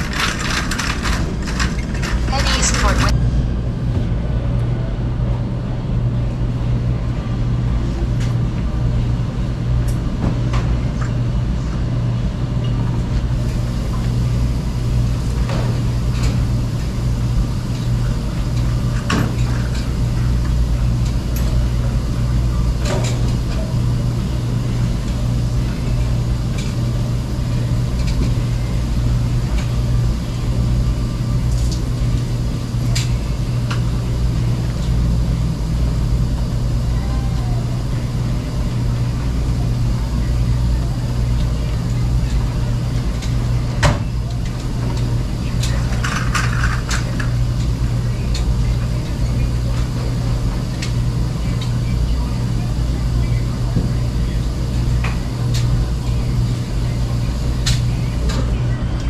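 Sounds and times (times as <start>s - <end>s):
clicks and clatter: 0.0s - 3.1s, 45.0s - 47.3s
washers and dryers humming: 0.0s - 59.0s.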